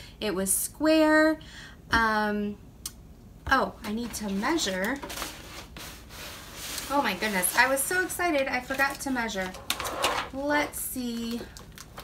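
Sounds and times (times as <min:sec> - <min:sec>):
paper sheet rustling on wood: 0:03.9 - 0:10.4.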